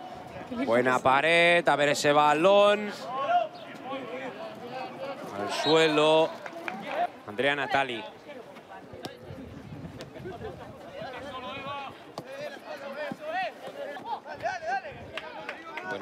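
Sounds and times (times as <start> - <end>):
players shouting: 2.8 - 8.1.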